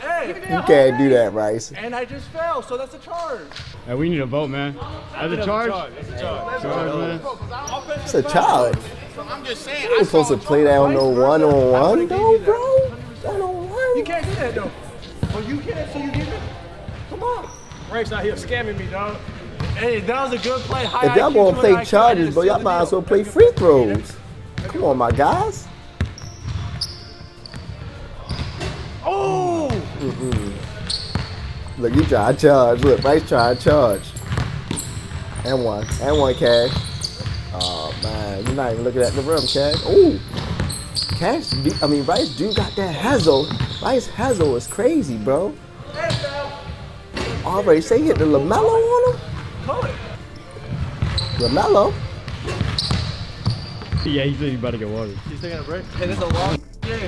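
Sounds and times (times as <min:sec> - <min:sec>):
high shoe squeak: 0:06.7 - 0:14.4, 0:17.1 - 0:18.5, 0:20.3 - 0:22.0, 0:24.8 - 0:29.0, 0:29.6 - 0:46.6, 0:47.2 - 0:56.6
basketball bouncing thuds: 0:34.2 - 0:34.8, 0:50.7 - 0:51.5
basketball bouncing on gym floor: 0:34.2 - 0:41.9, 0:50.7 - 0:54.1.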